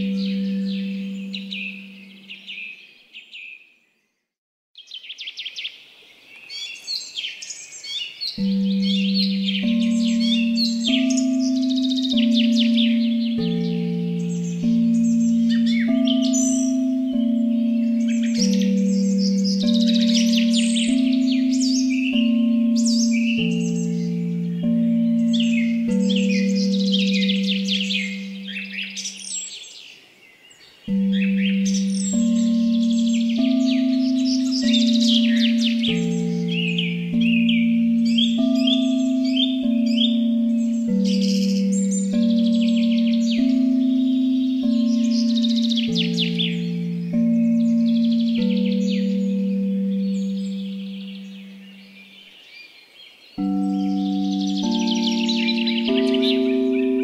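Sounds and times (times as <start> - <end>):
low sustained stepping tone: 0.0 - 2.5, 8.4 - 29.4, 30.9 - 52.2, 53.4 - 57.0
birds chirping and singing: 0.0 - 4.2, 4.8 - 57.0.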